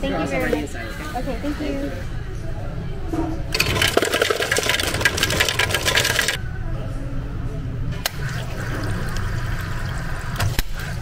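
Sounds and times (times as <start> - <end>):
ice cubes clattering into cup: 3.6 - 6.4.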